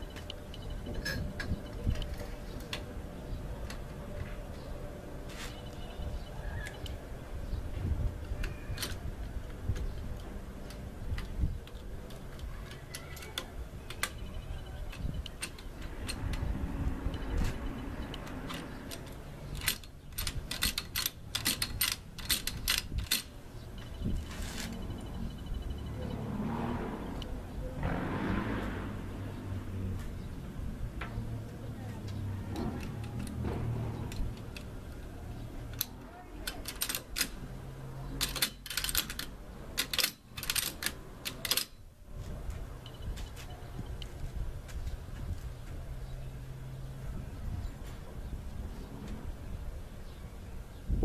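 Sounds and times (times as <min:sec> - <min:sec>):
shotgun parts clicking and rattling: 0:18.0 - 0:24.4, 0:32.6 - 0:37.4, 0:38.1 - 0:41.8.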